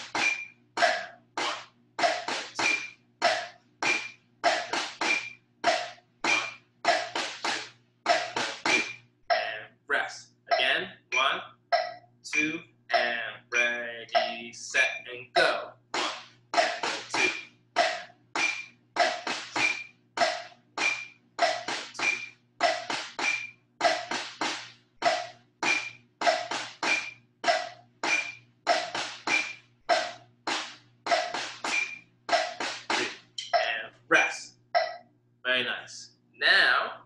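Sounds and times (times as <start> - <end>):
metronome clicking: 0.1 - 9.5, 10.5 - 15.0.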